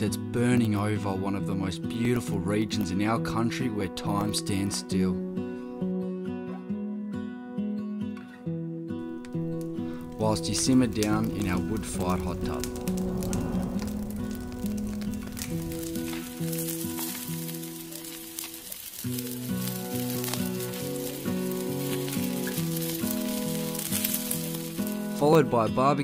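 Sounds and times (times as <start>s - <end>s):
music of slow held chords: 5.2s - 26.0s
sizzling crackling hiss: 9.1s - 25.9s.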